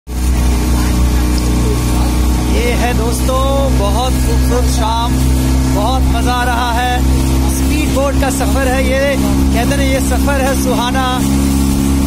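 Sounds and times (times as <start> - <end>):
speedboat engine droning: 0.1 - 12.0
wind and water rushing: 0.1 - 12.0.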